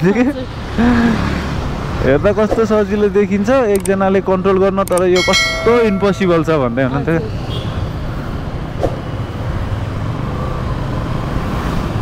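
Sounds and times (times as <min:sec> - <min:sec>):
wind and road noise: 0:00.0 - 0:12.0
person speaking: 0:04.9 - 0:06.7.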